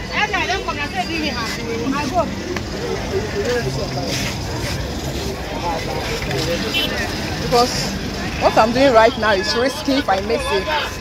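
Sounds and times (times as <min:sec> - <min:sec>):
minibus engine running: 0:00.0 - 0:11.0
people talking: 0:00.0 - 0:11.0.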